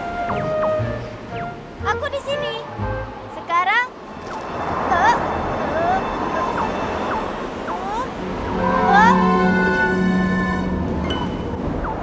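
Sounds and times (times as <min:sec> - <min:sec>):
whistling gusts sliding in pitch: 0:04.0 - 0:12.0
cartoon wind blowing: 0:04.2 - 0:11.0
music with long held notes: 0:08.1 - 0:11.4.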